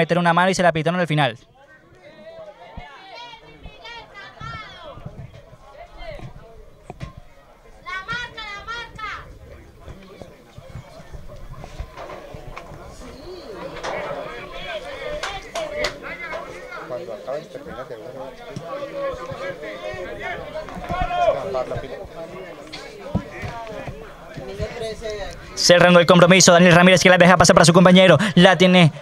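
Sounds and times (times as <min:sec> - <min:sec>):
people talking and calling out: 0:00.0 - 0:29.0.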